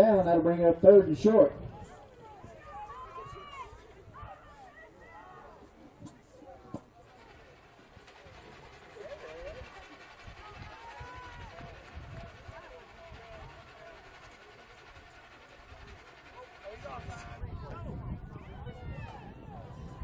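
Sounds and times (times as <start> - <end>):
voices and calls of players: 0.0 - 20.0.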